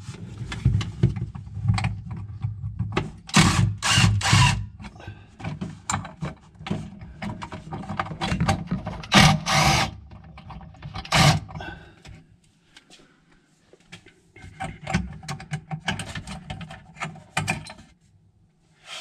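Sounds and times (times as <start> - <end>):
cordless drill running: 3.3 - 4.6, 9.2 - 9.9.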